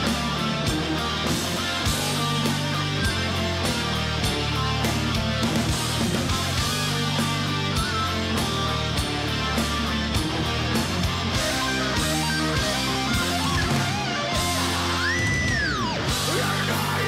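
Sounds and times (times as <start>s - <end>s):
heavy metal band playing: 0.0s - 17.0s.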